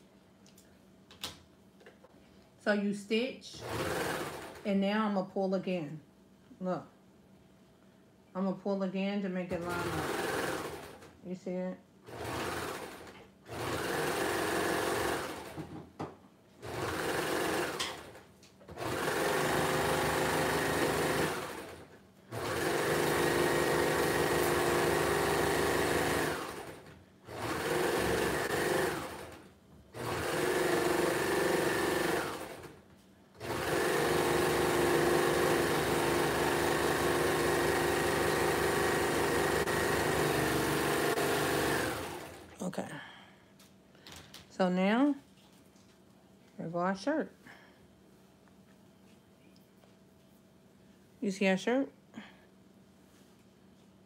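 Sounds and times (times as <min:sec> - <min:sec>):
serger sewing machine stitching: 0:03.6 - 0:04.8, 0:09.5 - 0:11.2, 0:12.0 - 0:15.7, 0:16.6 - 0:32.8, 0:33.4 - 0:42.5.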